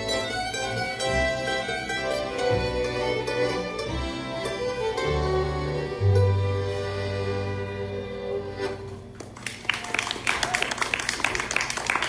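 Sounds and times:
audience applauding: 0:09.2 - 0:12.0.

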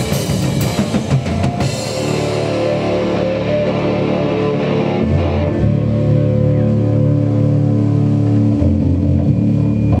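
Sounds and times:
bass guitar sustained notes: 0:00.0 - 0:10.0
electric guitar sustained notes: 0:00.0 - 0:10.0.

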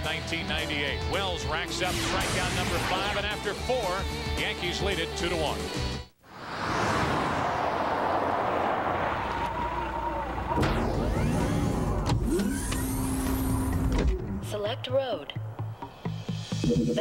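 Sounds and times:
car engine and tyre noise: 0:06.2 - 0:14.3
steady whir: 0:09.4 - 0:14.1.

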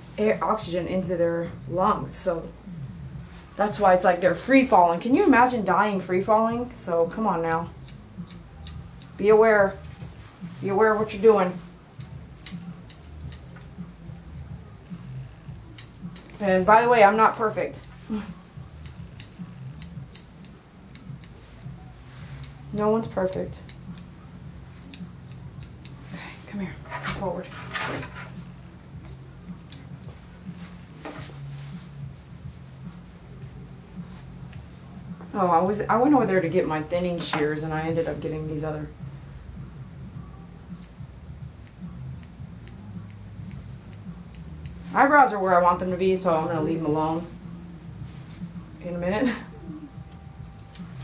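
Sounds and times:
low steady hum: 0:00.0 - 0:51.0
scissors snipping fur: 0:07.1 - 0:09.9, 0:11.9 - 0:13.8, 0:15.7 - 0:24.1, 0:24.8 - 0:26.0, 0:29.0 - 0:30.2, 0:40.7 - 0:41.0, 0:41.6 - 0:45.0, 0:49.9 - 0:51.0.

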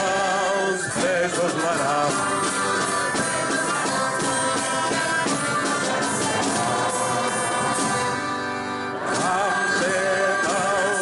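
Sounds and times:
man singing into microphone: 0:00.0 - 0:08.2, 0:09.1 - 0:11.0
accordion: 0:00.0 - 0:11.0
chorus singing: 0:00.0 - 0:11.0
flutes: 0:00.0 - 0:11.0
violin: 0:00.0 - 0:11.0.

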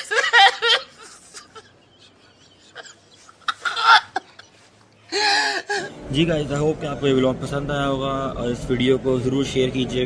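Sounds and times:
man sobbing: 0:00.0 - 0:06.0.

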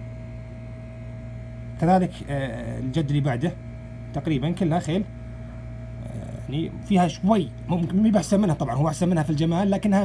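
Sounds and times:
steady electrical hum: 0:00.0 - 0:10.0.

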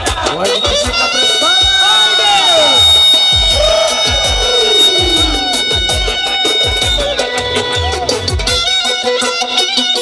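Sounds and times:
clarinet sliding runs: 0:01.2 - 0:06.7
steady low beat: 0:02.9 - 0:07.1.

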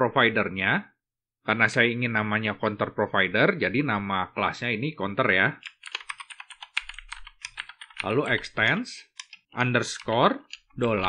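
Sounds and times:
computer keyboard typing: 0:05.6 - 0:11.0.

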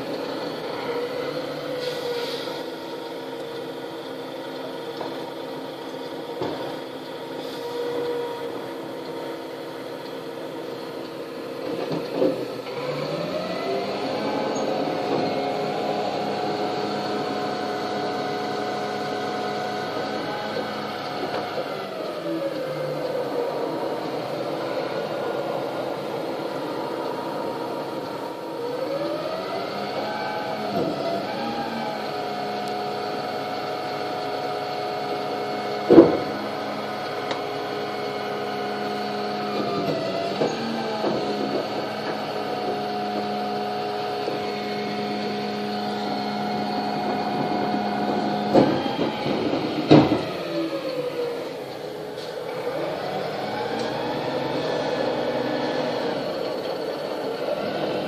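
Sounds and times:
bin lift working: 0:00.0 - 0:58.0
diesel truck engine running: 0:00.0 - 0:58.0.

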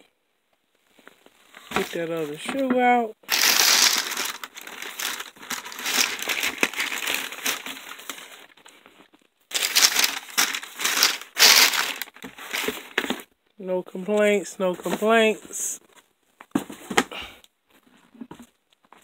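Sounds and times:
tissue paper crinkling: 0:03.2 - 0:08.7, 0:09.5 - 0:13.2.

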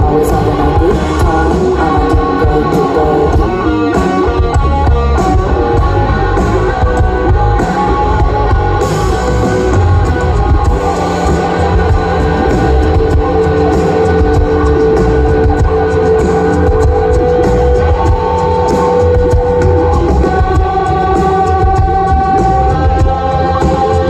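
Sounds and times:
rock band playing live: 0:00.0 - 0:24.0.

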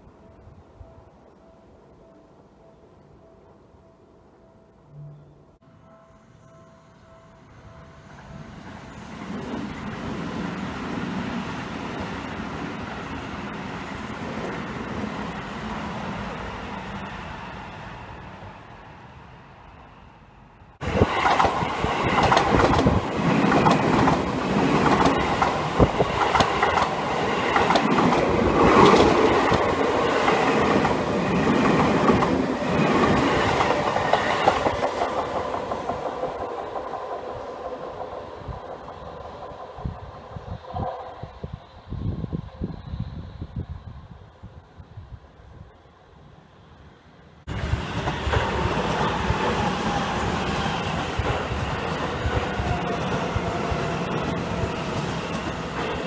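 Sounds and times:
distant train: 0:00.0 - 0:56.0
train passing close by: 0:00.0 - 0:56.0.

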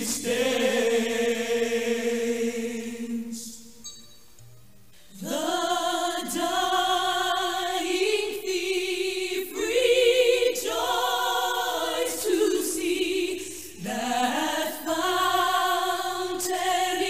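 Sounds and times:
choir singing held notes: 0:00.0 - 0:03.8, 0:05.1 - 0:17.0.

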